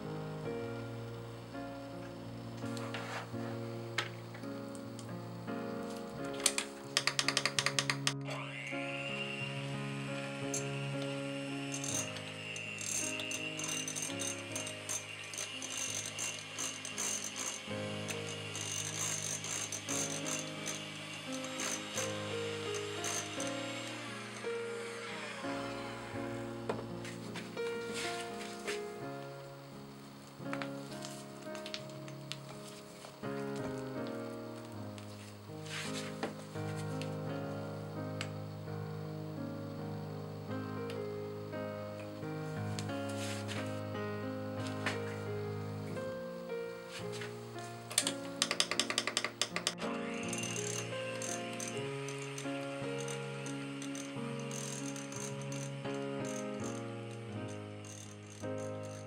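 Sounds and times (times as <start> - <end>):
background music: 0.0 - 59.0
electric hand mixer whining: 6.4 - 28.5, 47.9 - 59.0
mixer beaters rattling: 11.7 - 25.2, 48.0 - 59.0.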